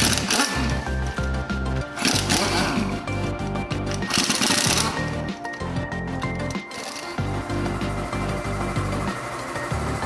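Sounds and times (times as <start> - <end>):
pneumatic impact wrench rattling: 0.0 - 5.3, 6.4 - 10.0
music with steady beat: 0.0 - 10.0.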